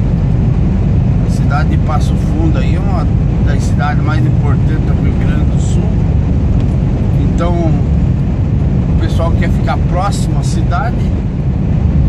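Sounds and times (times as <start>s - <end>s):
truck engine and tyres droning: 0.0s - 12.0s.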